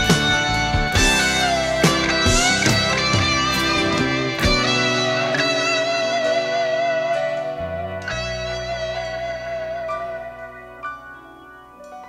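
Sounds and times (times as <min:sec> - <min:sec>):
rock band backing: 0:00.0 - 0:11.6.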